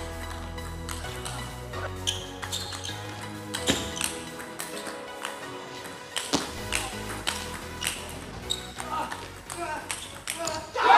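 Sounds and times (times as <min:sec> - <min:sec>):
background music with bass: 0:00.0 - 0:10.9.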